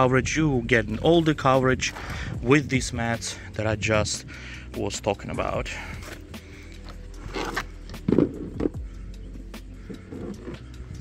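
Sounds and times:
rubber mats creaking and rubbing: 7.2s - 8.8s.

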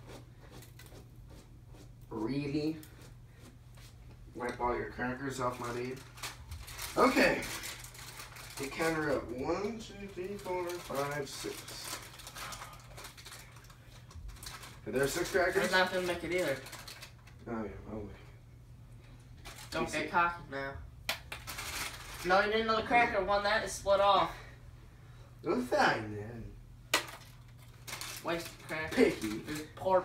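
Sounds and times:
steady low hum: 0.0s - 30.0s
crackers rustling and clicking: 5.4s - 17.4s, 19.4s - 19.8s, 21.1s - 22.4s, 26.9s - 30.0s.

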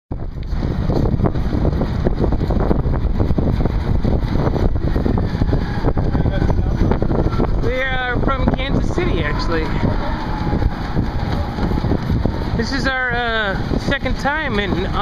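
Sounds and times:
road rumble: 0.1s - 15.0s
wind buffeting microphone: 0.1s - 15.0s
person speaking: 12.6s - 15.0s.

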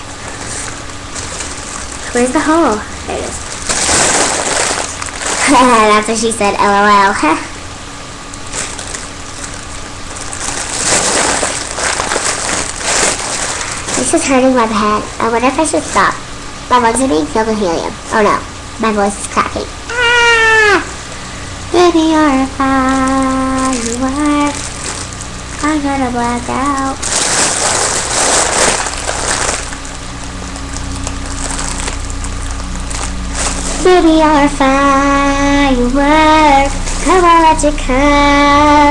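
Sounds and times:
foil balloon crinkling: 0.0s - 6.2s, 8.3s - 16.2s, 22.2s - 38.9s.

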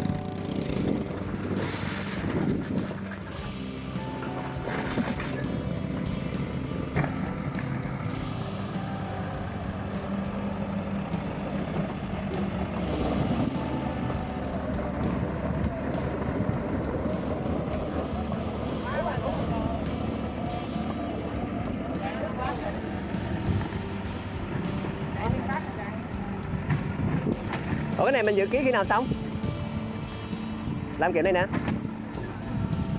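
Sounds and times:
excavator diesel engine running: 0.0s - 32.9s
voices: 2.7s - 32.9s.

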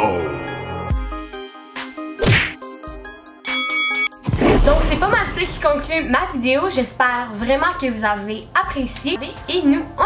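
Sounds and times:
game background music: 0.0s - 5.7s
punch and hit sound effects: 2.2s - 2.6s, 4.2s - 5.8s.

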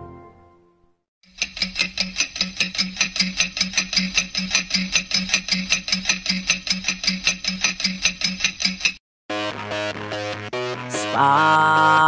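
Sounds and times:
clock ticking fast: 1.2s - 9.0s.

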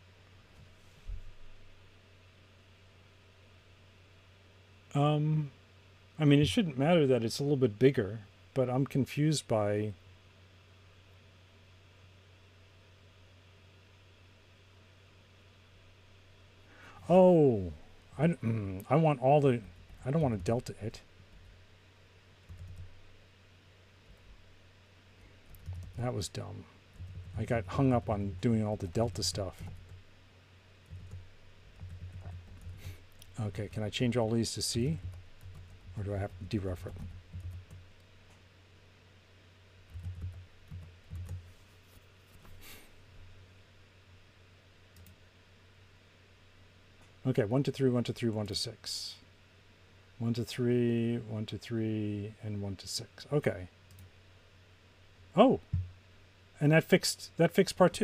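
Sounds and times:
faint hiss: 0.0s - 37.2s, 41.3s - 58.0s
steady low hum: 0.0s - 58.0s
low thumps on desk: 55.7s - 56.0s.

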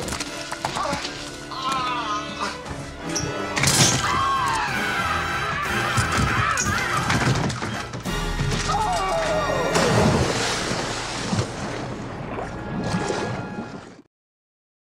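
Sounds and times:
film soundtrack music: 0.0s - 14.1s
rushing splash noise: 9.6s - 14.0s.

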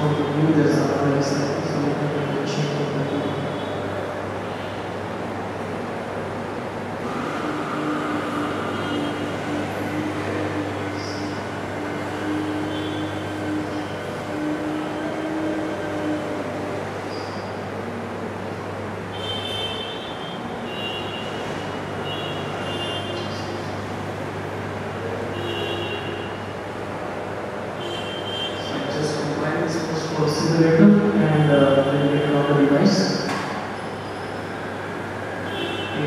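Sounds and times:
room hum and hiss: 0.0s - 36.0s.

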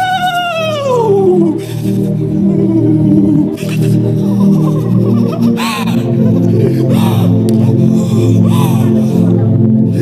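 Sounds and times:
woman wailing into a microphone: 0.0s - 1.6s.

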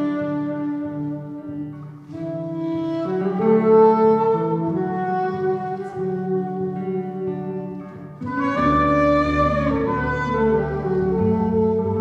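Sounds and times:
double bass: 0.0s - 12.0s
guitar: 0.0s - 12.0s
saxophone: 0.0s - 12.0s.

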